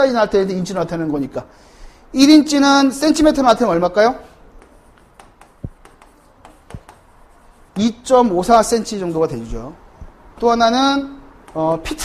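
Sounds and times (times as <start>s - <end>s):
chalk tapping and scratching: 3.0s - 10.6s, 11.4s - 12.0s.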